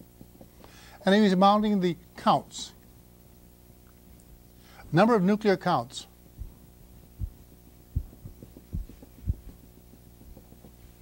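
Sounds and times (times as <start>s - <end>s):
steady low hum: 0.0s - 11.0s
soft dull thumps: 6.4s - 11.0s.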